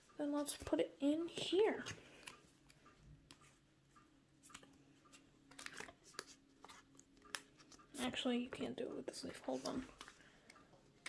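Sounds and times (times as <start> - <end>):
soft clicks and rustles of cards: 1.8 - 11.0.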